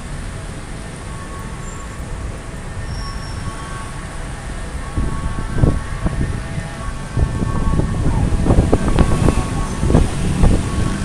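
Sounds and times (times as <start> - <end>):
irregular low rumbling buffets: 0.0 - 11.0
train rumble with faint whine: 0.0 - 11.0.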